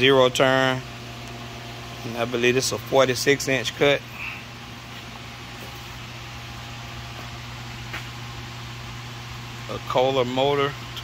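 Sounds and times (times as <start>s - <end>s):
machine drone with hiss: 0.0s - 11.0s.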